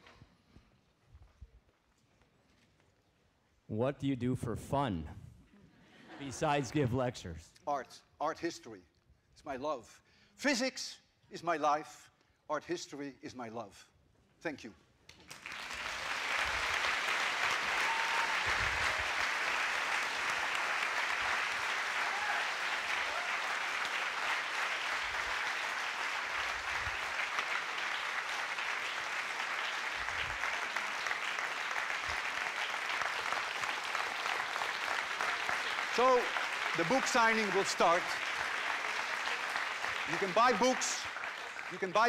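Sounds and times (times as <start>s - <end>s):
audience applauding: 15.2s - 42.0s.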